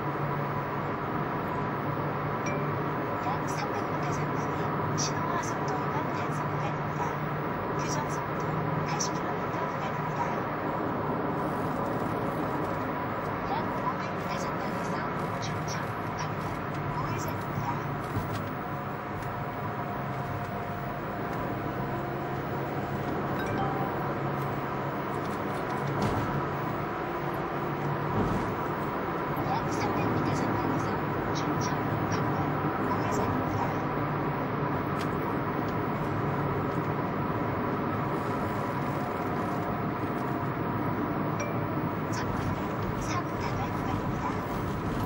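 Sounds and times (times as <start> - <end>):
car road and engine noise: 0.0 - 45.0
faint held tones: 23.4 - 24.9.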